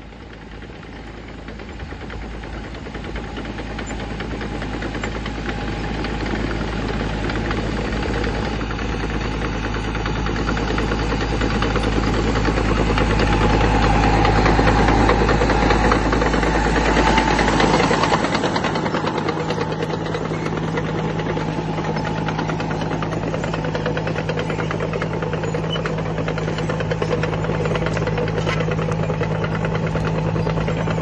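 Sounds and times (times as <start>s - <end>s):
tractor diesel engine under load: 0.0s - 31.0s
plough clattering through soil: 2.7s - 31.0s.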